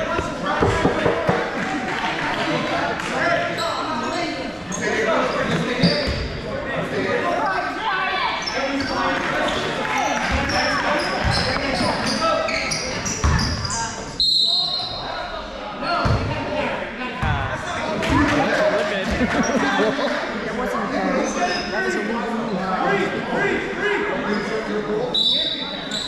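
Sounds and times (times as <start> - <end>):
voices in echoing hall: 0.0 - 26.0
shoe squeaks: 3.6 - 6.3, 8.4 - 15.1, 24.3 - 26.0.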